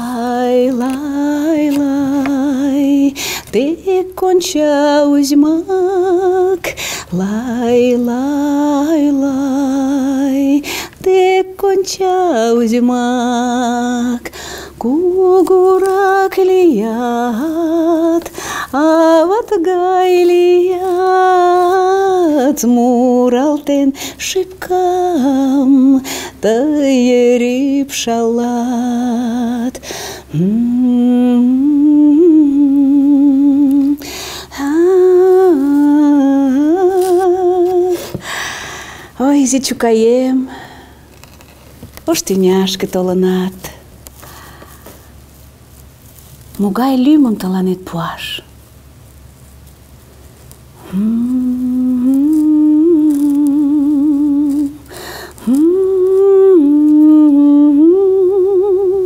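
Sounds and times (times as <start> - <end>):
woman humming a lullaby: 0.0 - 38.2, 50.8 - 59.0
woman breathing in: 3.2 - 3.5, 6.7 - 7.1, 10.6 - 11.0, 14.3 - 14.8, 18.3 - 18.7, 29.8 - 30.3, 34.0 - 34.5, 38.2 - 39.2, 44.2 - 45.0, 54.9 - 55.4.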